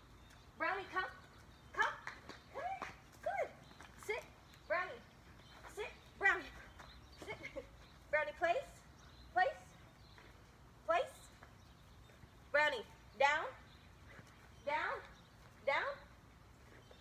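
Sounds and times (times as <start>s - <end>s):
woman calling a puppy: 0.6s - 6.6s, 7.2s - 9.7s, 10.9s - 11.3s, 14.6s - 16.1s.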